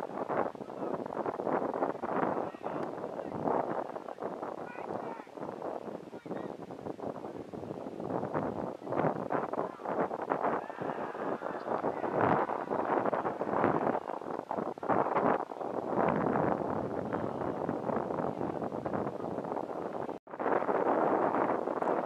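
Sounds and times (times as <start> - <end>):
wind gusting on microphone: 0.0 - 22.0.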